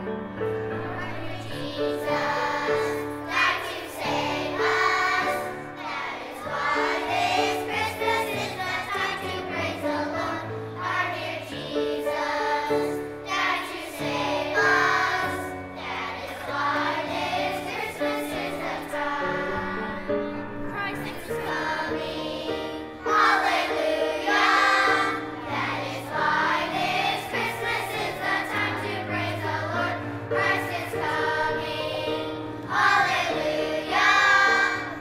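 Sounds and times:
children's choir singing: 0.0s - 35.0s.

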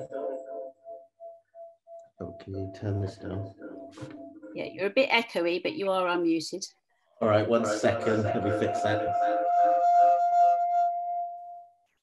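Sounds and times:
echoing voice: 0.0s - 0.6s, 2.2s - 10.5s
audio feedback ringing tone: 0.0s - 5.0s, 7.2s - 11.6s.

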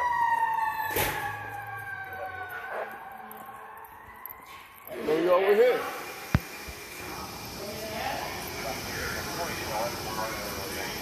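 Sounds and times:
steady background noise: 0.0s - 11.0s
faint voices: 6.9s - 11.0s.

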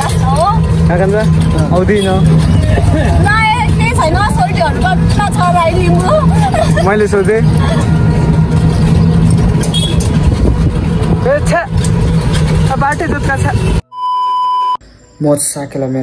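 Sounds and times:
women's voices: 0.0s - 0.6s, 3.0s - 6.8s
engine and road rumble: 0.0s - 13.9s
short steady beep: 13.8s - 15.2s.

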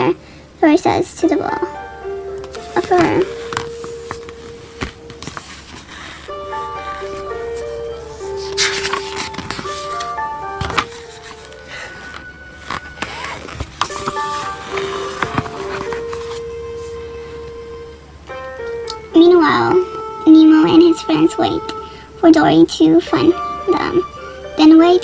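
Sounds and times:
simple melody of sustained notes: 1.2s - 25.0s
book pages rustling and turning: 2.4s - 17.0s.

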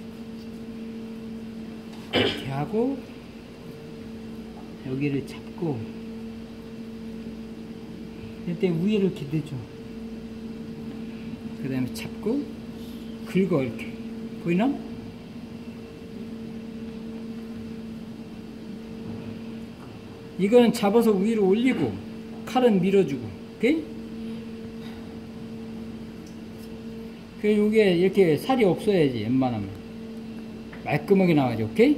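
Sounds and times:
steady machine hum: 0.0s - 31.9s.

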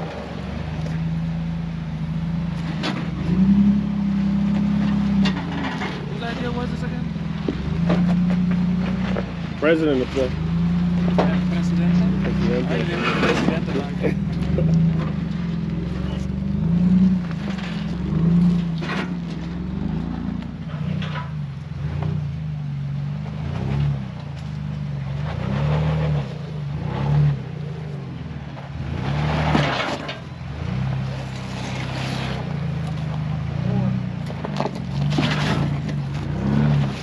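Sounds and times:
car engine at low revs: 0.0s - 37.0s.

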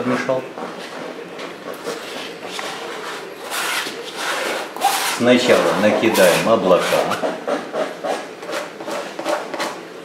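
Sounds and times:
palette knife scraping paint: 1.8s - 9.8s.

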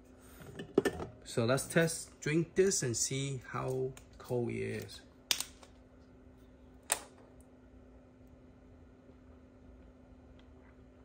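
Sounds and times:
mini fridge humming: 0.0s - 11.0s.

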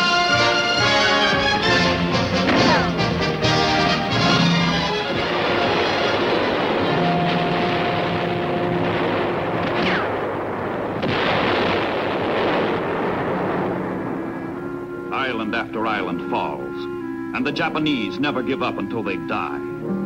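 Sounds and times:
orchestral music with brass: 0.0s - 9.8s, 13.6s - 20.0s
artillery explosions: 0.8s - 16.5s
gunfire: 4.3s - 14.3s.

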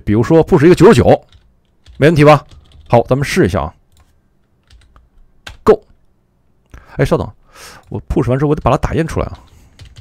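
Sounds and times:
keyboard keystrokes: 3.9s - 5.6s.

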